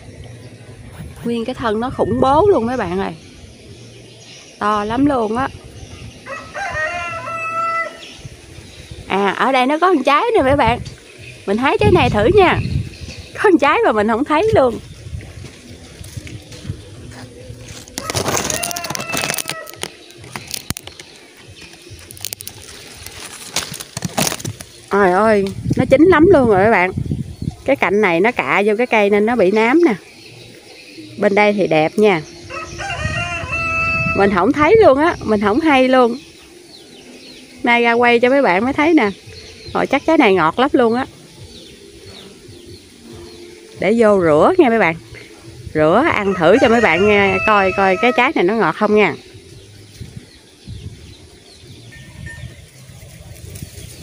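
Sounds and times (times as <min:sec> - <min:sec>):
birds calling: 0:00.0 - 0:54.0
leaves and branches rustling: 0:00.0 - 0:54.0
branches snapping: 0:17.6 - 0:25.8.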